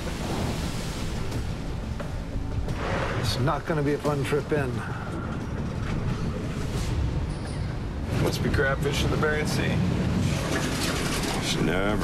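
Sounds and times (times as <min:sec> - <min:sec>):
waves and spray rushing: 0:00.0 - 0:12.0
wind: 0:00.0 - 0:12.0.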